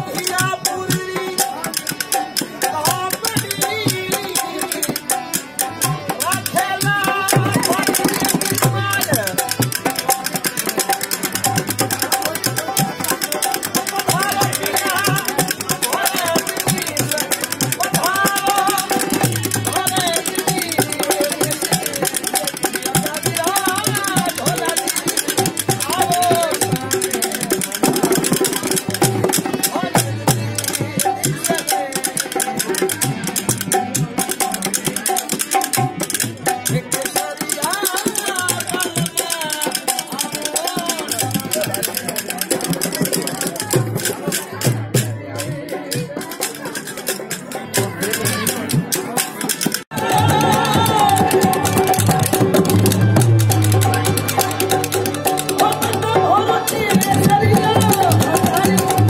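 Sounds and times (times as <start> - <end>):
man singing: 0.0 - 10.9, 11.5 - 59.0
harmonium drone: 0.0 - 42.1, 49.8 - 59.0
hand drum: 0.0 - 59.0.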